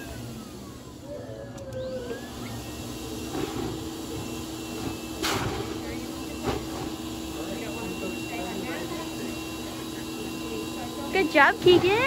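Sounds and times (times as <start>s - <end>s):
blower motor humming: 0.0s - 12.0s.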